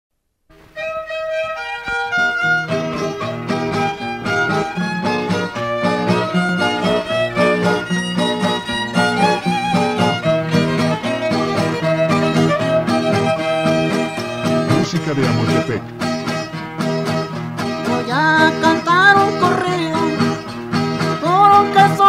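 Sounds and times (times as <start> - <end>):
rhythmic guitar: 0.6 - 22.0
violin melody: 0.6 - 22.0.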